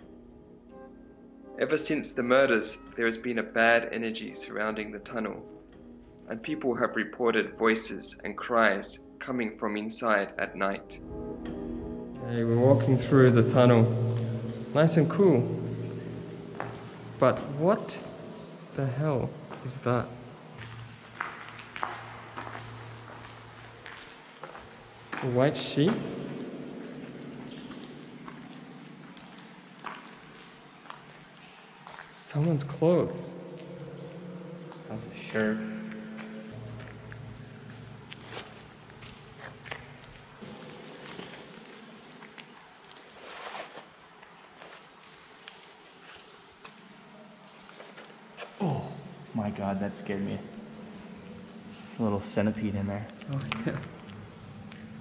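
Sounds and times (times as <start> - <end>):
steady high hiss: 12.3 - 55.0
slow footsteps: 13.8 - 55.0
faint low hum: 24.6 - 42.0, 46.6 - 55.0.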